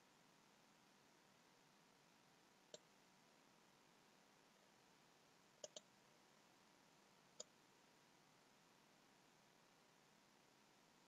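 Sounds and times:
faint computer mouse clicks: 0:05.6 - 0:05.9, 0:07.4 - 0:07.6.

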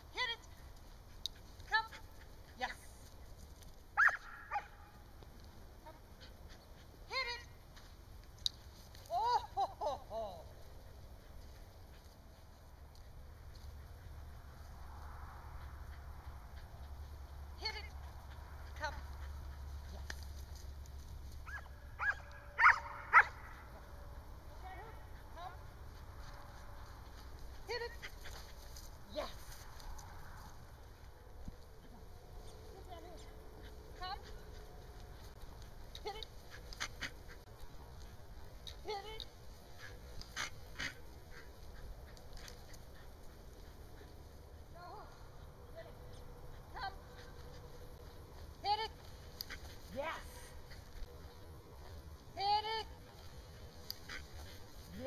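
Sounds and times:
dog barking and yipping: 0:04.0 - 0:05.0, 0:21.4 - 0:23.8.

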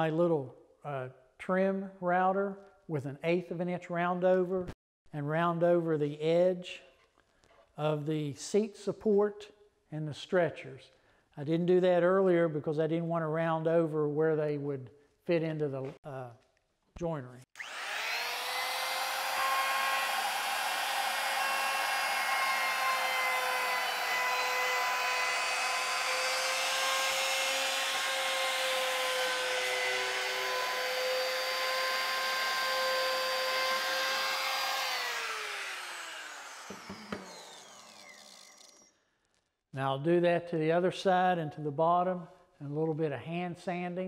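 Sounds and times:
trim router whining: 0:17.6 - 0:38.9.

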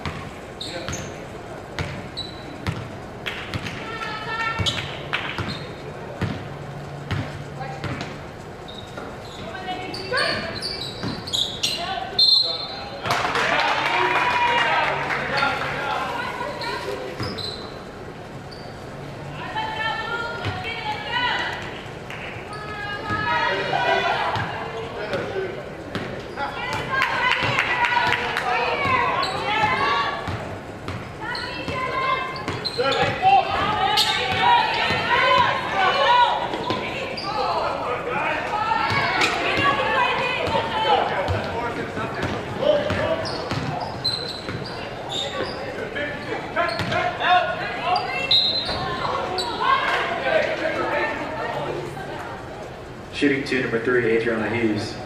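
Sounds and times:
people's voices: 0:00.0 - 0:55.0
basketball bouncing on wooden floor: 0:42.2 - 0:43.7.

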